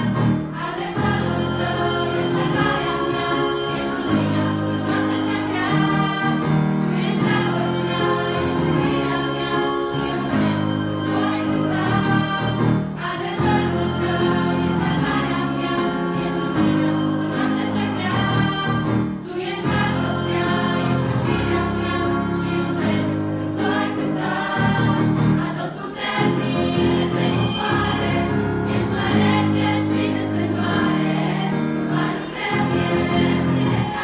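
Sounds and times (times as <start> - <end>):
girls' choir singing: 0.0 - 34.0
instrumental accompaniment: 0.0 - 34.0.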